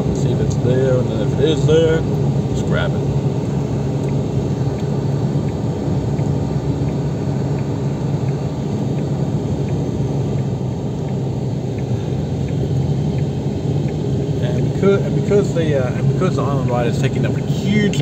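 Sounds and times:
low hum: 0:00.0 - 0:18.0
vehicle engine and road rumble: 0:00.0 - 0:18.0.

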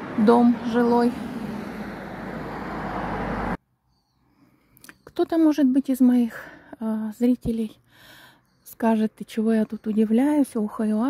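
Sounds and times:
vehicle low rumble: 0:00.0 - 0:03.6
road traffic noise: 0:00.0 - 0:05.2.

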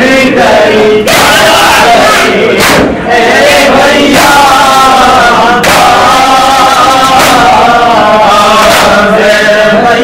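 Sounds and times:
crowd of men chanting: 0:00.0 - 0:10.0.

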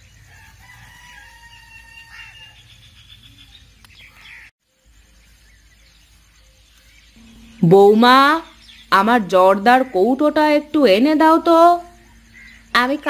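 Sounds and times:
rooster crowing: 0:00.1 - 0:02.8
low steady background hum: 0:00.2 - 0:13.0.

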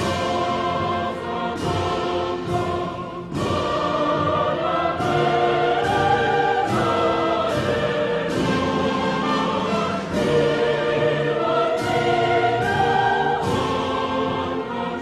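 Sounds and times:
orchestral music with choir: 0:00.0 - 0:15.0.

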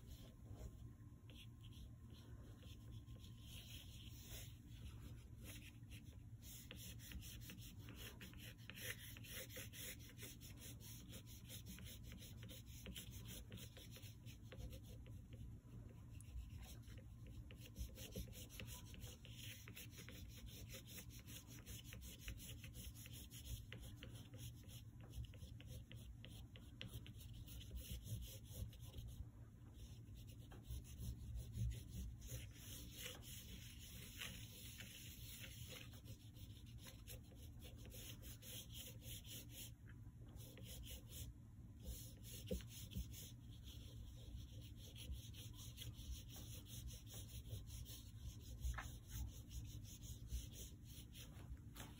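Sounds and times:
oil pastel scratching on paper: 0:00.0 - 0:51.9.

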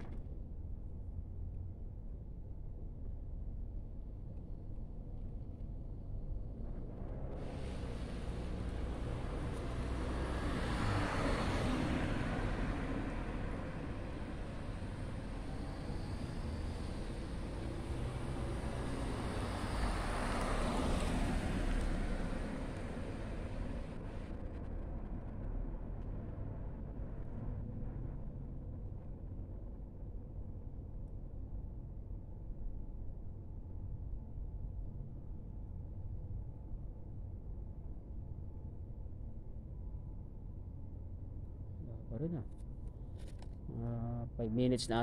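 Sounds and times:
traffic rumble: 0:05.3 - 0:31.7, 0:41.2 - 0:45.0
vehicles passing: 0:06.8 - 0:28.2.

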